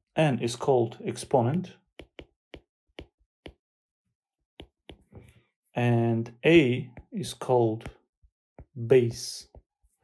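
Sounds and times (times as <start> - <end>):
stylus tapping on drawing tablet: 1.9 - 3.7, 4.6 - 5.3, 6.8 - 8.8, 9.4 - 9.7.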